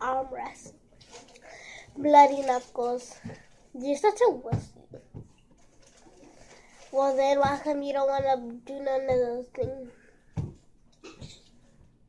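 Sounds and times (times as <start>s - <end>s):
girl's voice: 0.0s - 0.7s, 1.4s - 4.8s, 6.8s - 10.0s.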